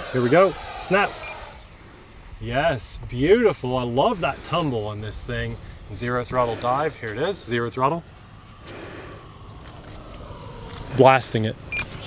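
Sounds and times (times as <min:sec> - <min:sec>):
wind rumble on microphone: 0:00.1 - 0:12.0.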